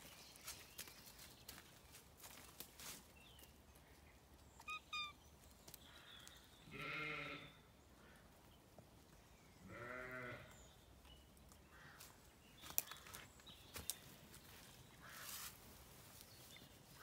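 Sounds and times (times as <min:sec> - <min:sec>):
sheep bleating: 0:06.7 - 0:07.5, 0:09.7 - 0:10.5.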